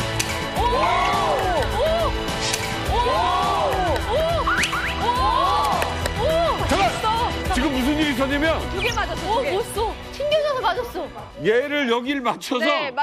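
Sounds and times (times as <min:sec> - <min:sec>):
background music: 0:00.0 - 0:13.0
voices exclaiming in amazement: 0:00.5 - 0:02.2, 0:02.8 - 0:07.5.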